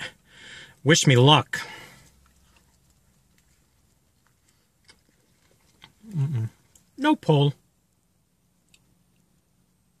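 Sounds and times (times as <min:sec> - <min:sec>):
crunchy shell chewing crackles: 0:02.0 - 0:07.0.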